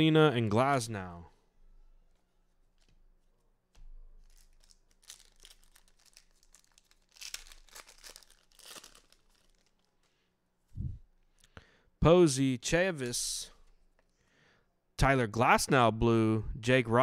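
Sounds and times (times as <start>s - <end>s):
foil wrapper tearing and crinkling: 4.2s - 10.0s.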